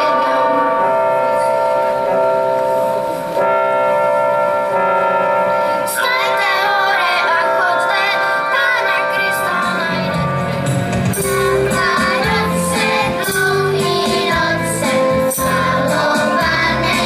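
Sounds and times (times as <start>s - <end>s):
instrumental accompaniment: 0.0s - 17.0s
children's choir singing: 5.9s - 17.0s.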